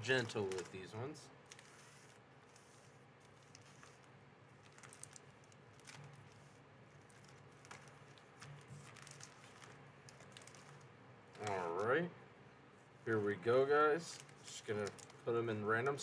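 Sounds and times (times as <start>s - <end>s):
foil packs crinkling: 0.0s - 12.0s, 14.0s - 16.0s.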